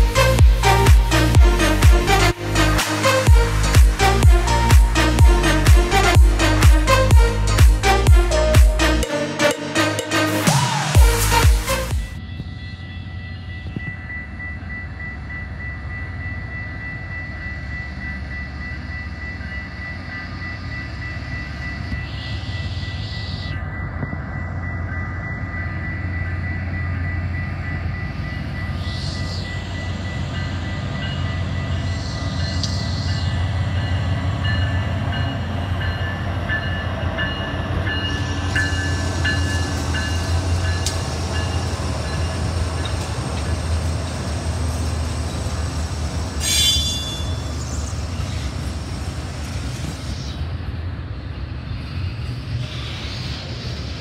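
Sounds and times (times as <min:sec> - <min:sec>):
crossing bell ringing: 0:00.0 - 0:48.3
diesel locomotive engine rumble: 0:00.0 - 0:54.0.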